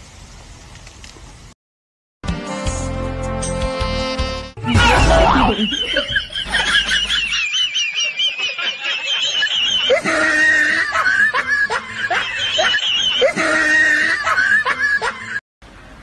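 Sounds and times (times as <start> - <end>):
high-pitched warbling giggling: 4.7 - 7.4.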